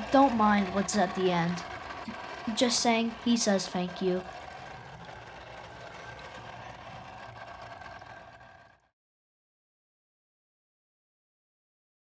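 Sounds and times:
aquarium filter humming: 0.0 - 8.8
water noise: 0.0 - 8.8.

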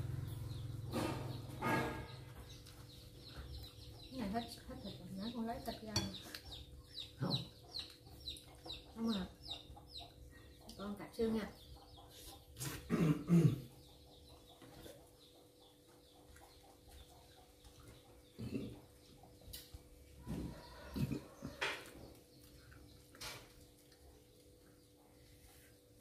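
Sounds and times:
bird chirping: 0.0 - 25.9.

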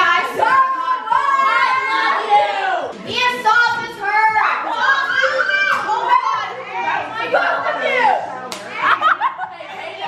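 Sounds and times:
girls laughing: 8.8 - 10.0.

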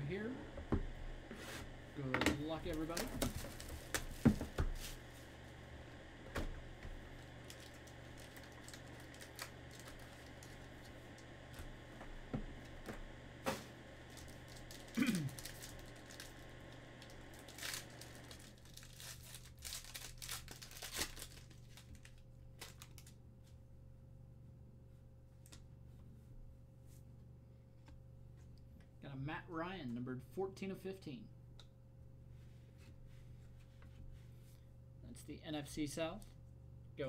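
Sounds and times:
plastic shrink wrap tearing: 7.2 - 11.0, 14.1 - 23.2
clicks and rustles of cards: 17.3 - 23.2.

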